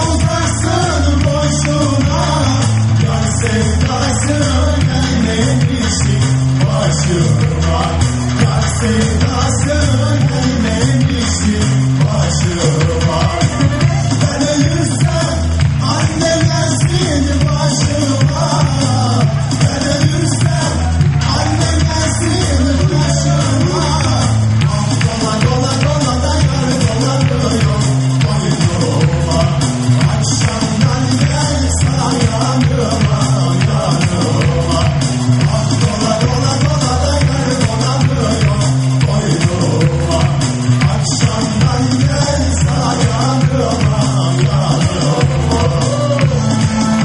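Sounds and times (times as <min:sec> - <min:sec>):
live amplified band music: 0:00.0 - 0:47.0
man singing: 0:00.0 - 0:47.0
repeating bass beat: 0:00.0 - 0:47.0.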